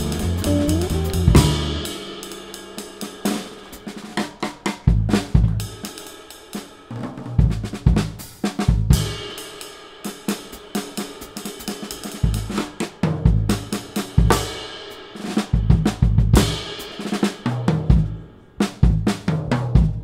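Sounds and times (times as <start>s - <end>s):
deep bass drum hits: 0.0s - 1.9s
snare and tom strikes: 0.0s - 2.1s
cymbal and hi-hat: 0.0s - 5.0s, 5.6s - 6.9s, 8.2s - 19.4s.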